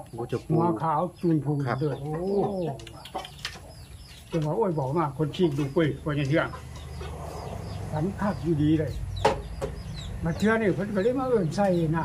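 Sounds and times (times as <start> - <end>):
bird chirping: 0.0 - 12.0.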